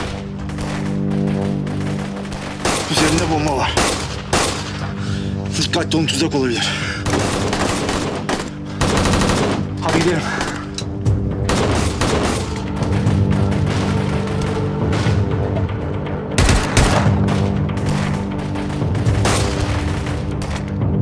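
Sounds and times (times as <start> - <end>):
automatic gunfire: 0.0 - 4.7, 7.0 - 10.5, 16.4 - 20.2
dramatic orchestral music: 0.0 - 21.0.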